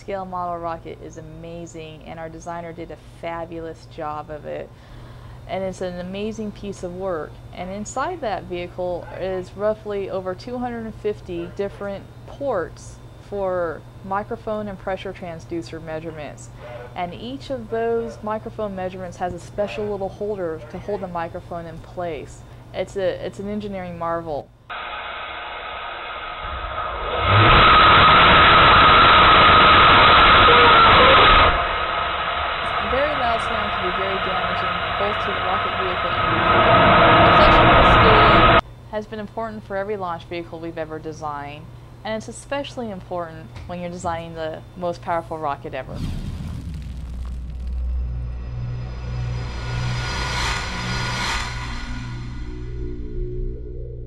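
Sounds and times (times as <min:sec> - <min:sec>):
deep rumble: 0:24.7 - 0:38.6, 0:45.8 - 0:54.0
low pulsing drone: 0:24.7 - 0:38.6, 0:45.3 - 0:54.0
rocket engine exhaust roar: 0:24.7 - 0:38.6, 0:45.8 - 0:53.0
bright whoosh: 0:30.0 - 0:38.6, 0:46.0 - 0:53.1.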